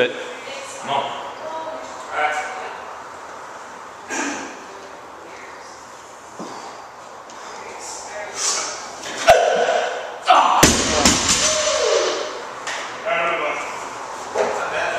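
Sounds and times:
people shouting: 9.2 - 12.4
barbell crashing onto platform: 10.6 - 12.2.

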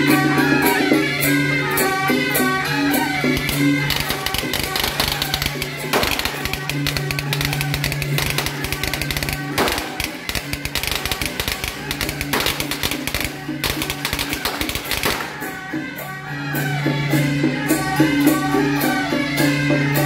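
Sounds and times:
cymbals and gongs clashing: 0.0 - 20.0
drum strokes: 0.0 - 20.0.

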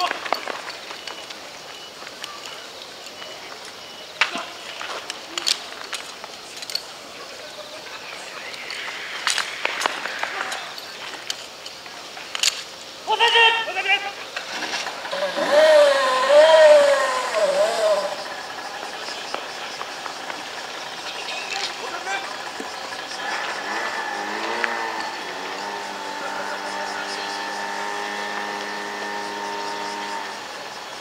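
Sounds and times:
small pump engine running: 14.8 - 31.0
person shouting commands: 15.2 - 18.2.

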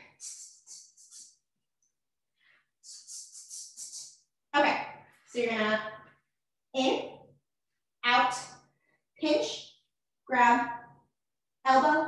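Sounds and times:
woman speaking: 4.6 - 6.0, 6.8 - 7.2, 8.0 - 8.5, 9.2 - 9.6, 10.3 - 10.8, 11.7 - 12.0.

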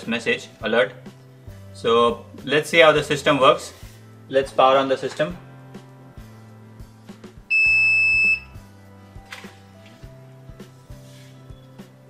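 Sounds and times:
background music: 0.0 - 12.0
high-pitched buzzer beep: 7.5 - 8.6.

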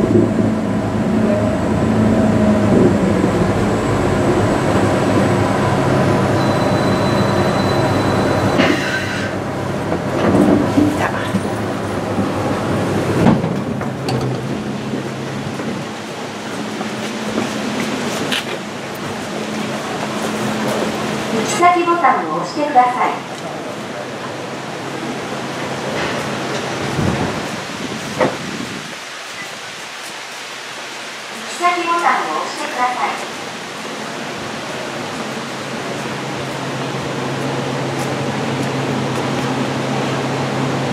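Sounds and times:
elevator car humming on track: 0.0 - 30.1, 31.4 - 40.9
steady hiss: 24.8 - 38.8.

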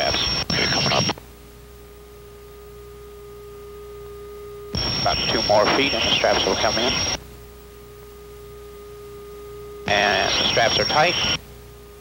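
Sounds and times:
electrical hum on intercom: 0.0 - 12.0.

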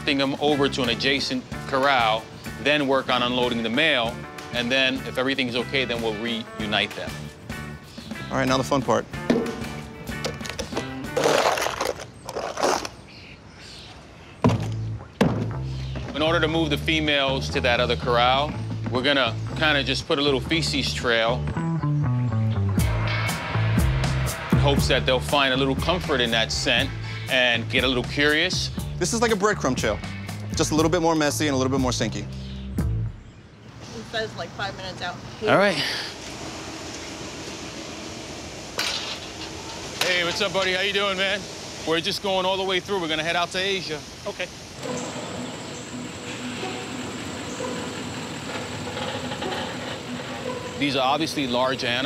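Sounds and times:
wooden gate opening: 9.2 - 13.0, 38.7 - 41.2, 46.4 - 52.0
metal shovel scraping dirt floor: 11.0 - 12.9.

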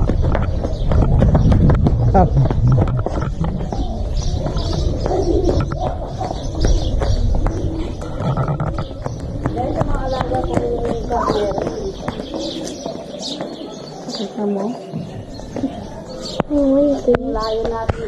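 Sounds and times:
wind rumble on microphone: 0.0 - 12.6
small birds chirping: 0.0 - 18.0
dove cooing: 2.2 - 14.8.

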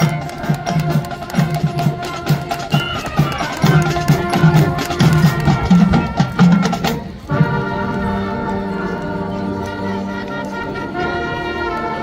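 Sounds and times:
drums: 0.0 - 7.8
marching band playing: 0.0 - 12.0.

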